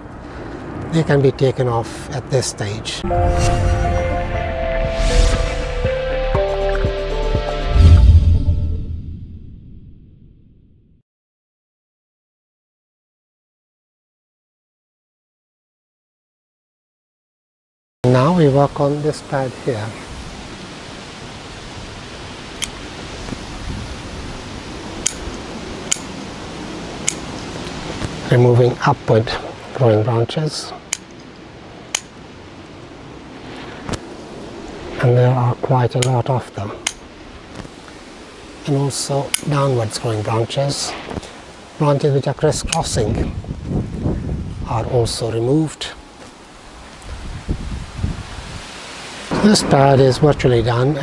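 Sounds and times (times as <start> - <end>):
steady background hiss: 0.0 - 3.1, 18.1 - 51.0
pruning scissors snipping: 25.0 - 26.1, 27.0 - 27.3.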